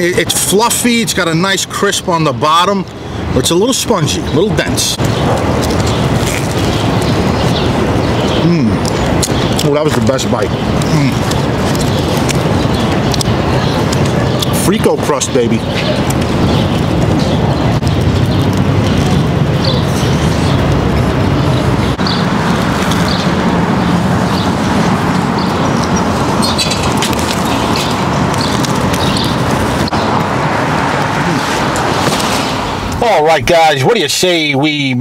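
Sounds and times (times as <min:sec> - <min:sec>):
city street traffic: 0:00.0 - 0:35.0
cars passing close by: 0:02.1 - 0:34.0.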